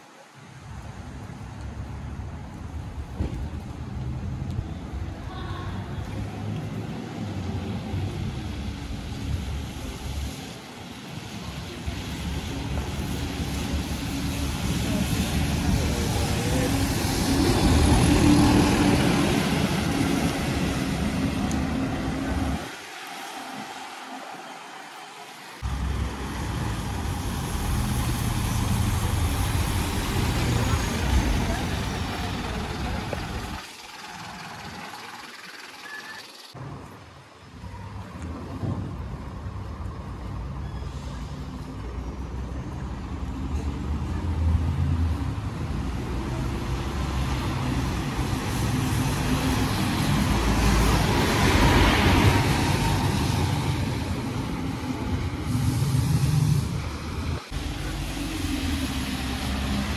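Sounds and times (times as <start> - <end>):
diesel bus engines rumbling: 2.7 - 24.3, 25.6 - 35.8, 37.9 - 59.9.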